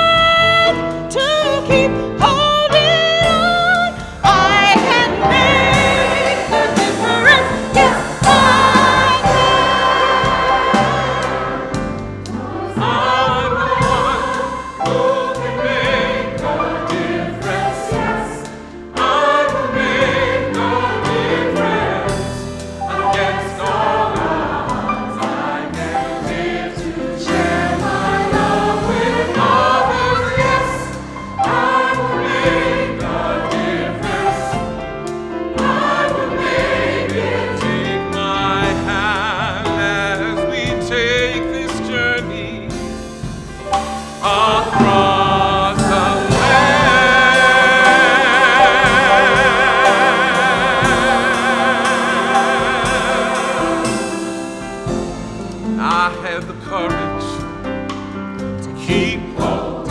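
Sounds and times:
band accompaniment: 0.0 - 59.9
choir singing gospel: 0.0 - 59.9.

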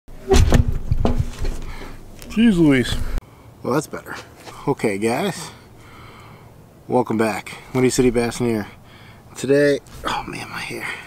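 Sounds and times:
camera handling thumps and rubbing: 0.3 - 2.4.

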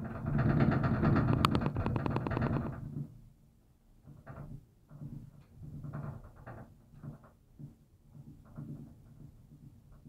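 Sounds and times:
cable car running gear rattling: 0.0 - 2.9.

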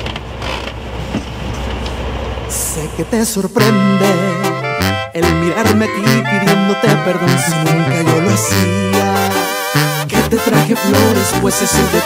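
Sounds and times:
creaking: 0.0 - 1.8
bus interior rumble: 0.0 - 5.1.

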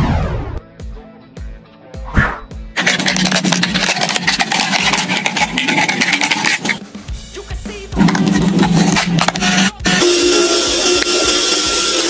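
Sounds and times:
background music: 0.0 - 12.0
short swoosh: 2.1 - 2.5
plastic bottle crackling being cut: 2.8 - 6.8, 8.0 - 12.0.

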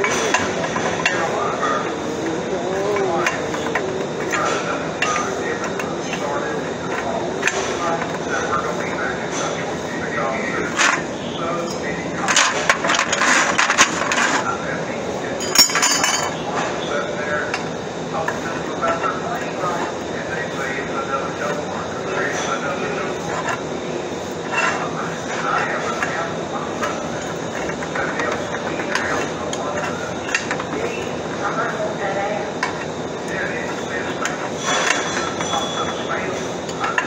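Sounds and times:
metal clanks: 15.4 - 16.4
steel tubing clinking and scraping: 15.4 - 16.4, 32.6 - 37.0.

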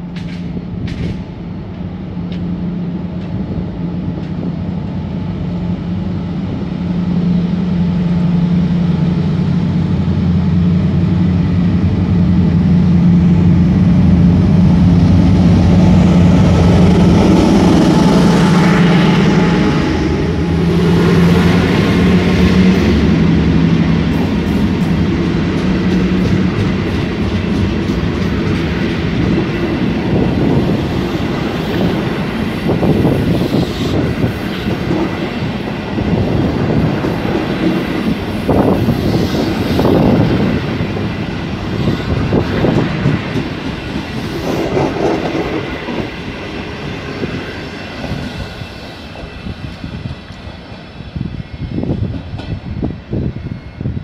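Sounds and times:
locomotive engine running: 0.0 - 50.8
train wheels clacking over joints: 0.1 - 1.3, 24.2 - 29.9.

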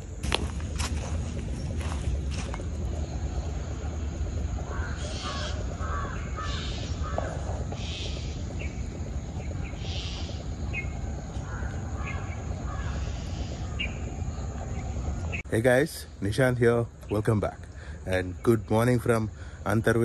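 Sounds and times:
steady low rumble: 0.0 - 20.0
small birds chirping: 0.4 - 20.0
crows cawing: 4.7 - 8.2, 11.3 - 13.7.

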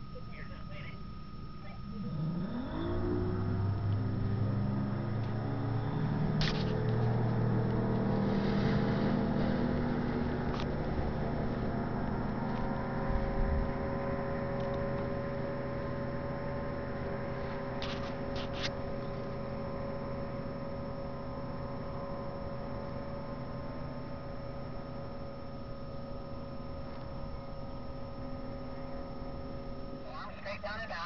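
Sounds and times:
tow engine revving: 1.9 - 24.9.

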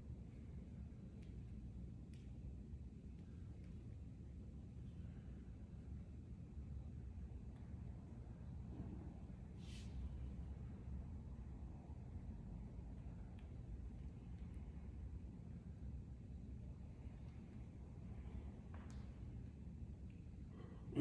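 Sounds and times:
faint low rumble: 0.0 - 21.0.

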